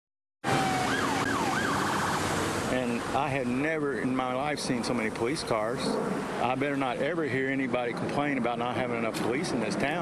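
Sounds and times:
emergency vehicle siren: 0.4s - 2.7s
steady background noise: 0.5s - 10.0s.

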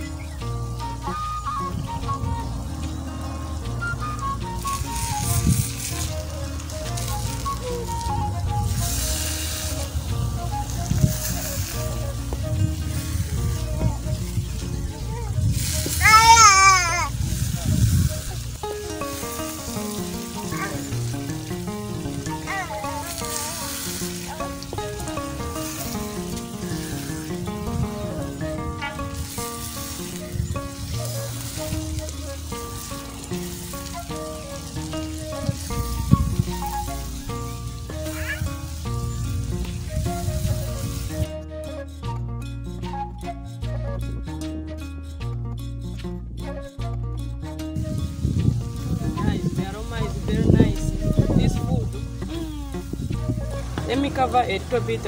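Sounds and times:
eggs sizzling in a wok: 0.0s - 41.3s
background music with melody: 0.0s - 55.0s.

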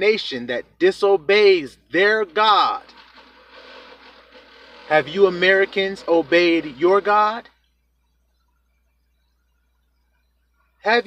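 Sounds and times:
man speaking: 0.0s - 2.9s, 4.9s - 7.5s.

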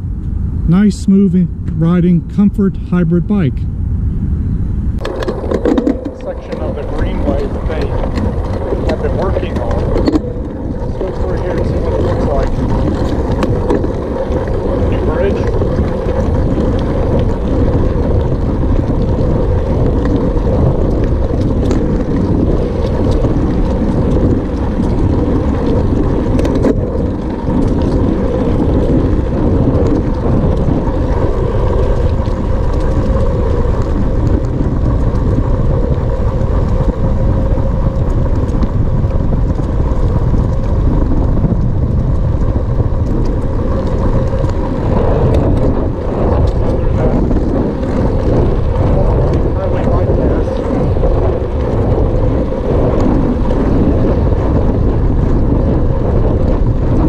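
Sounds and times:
bicycle tyres rolling on pavement: 0.0s - 57.0s
wind buffeting microphone: 0.0s - 57.0s.

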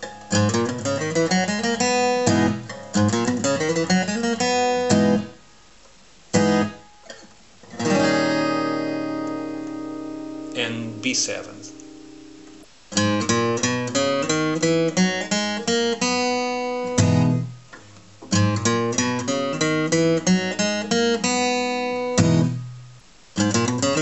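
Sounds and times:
fingerpicked acoustic guitar: 0.0s - 24.0s.

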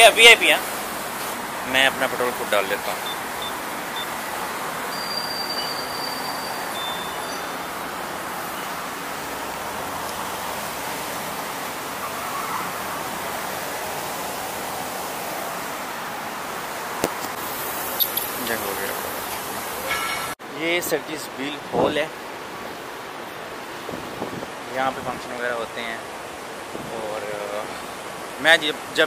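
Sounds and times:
faint high-pitched beeps: 2.9s - 4.2s, 4.9s - 7.6s, 18.0s - 18.4s.

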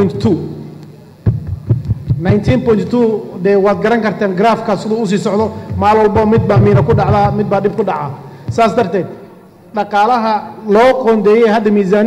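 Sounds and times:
man speaking into a microphone: 0.0s - 0.6s, 2.1s - 12.0s
low dull thumps: 1.2s - 2.8s, 5.4s - 7.8s, 8.4s - 8.9s.

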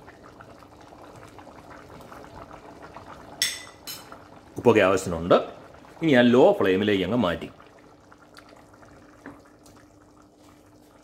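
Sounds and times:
faint steady hum: 0.0s - 11.0s
rice simmering and bubbling: 0.0s - 11.0s.

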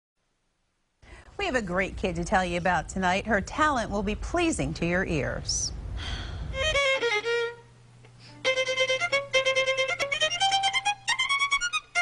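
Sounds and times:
solo violin playing: 6.5s - 12.0s.

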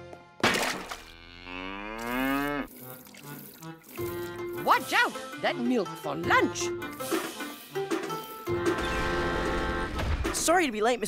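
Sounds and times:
cartoon cow mooing: 1.1s - 2.7s.

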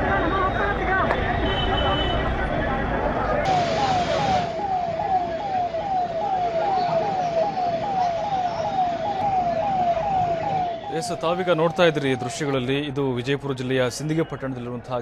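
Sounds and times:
emergency vehicle siren: 1.8s - 14.5s
street hiss: 3.4s - 5.1s.

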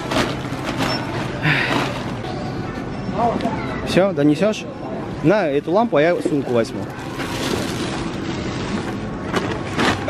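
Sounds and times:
shopping rustling and rattling: 0.0s - 2.5s, 6.0s - 10.0s.

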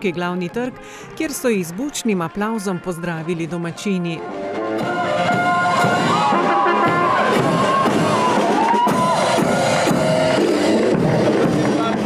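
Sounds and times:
marching brass band playing: 1.2s - 12.0s
crowd cheering: 1.4s - 12.0s
bass drum beats: 4.6s - 12.0s.

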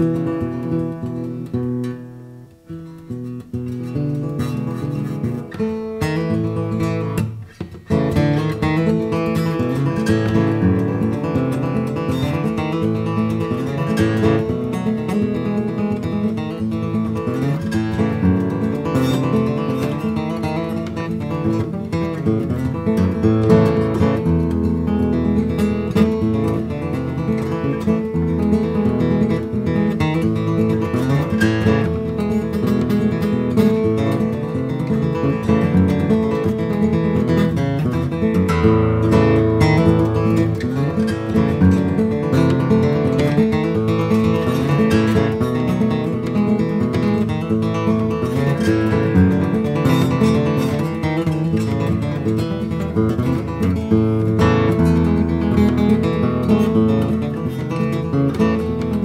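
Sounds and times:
fingerpicked banjo-style melody: 0.0s - 59.0s.

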